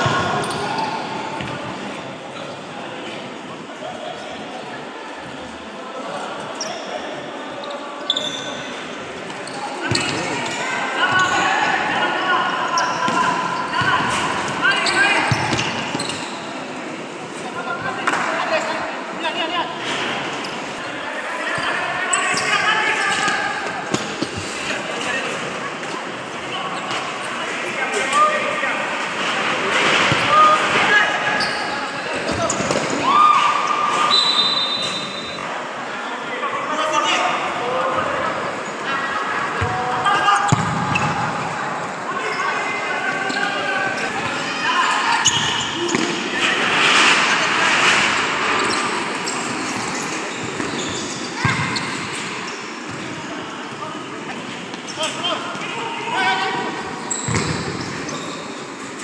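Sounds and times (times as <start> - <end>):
players shouting in echoing hall: 0.0 - 59.0
ball kicked and bouncing: 57.3 - 57.6.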